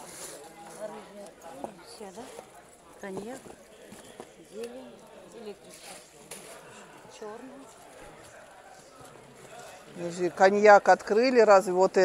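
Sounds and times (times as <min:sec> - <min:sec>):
people talking in background: 0:00.0 - 0:12.0.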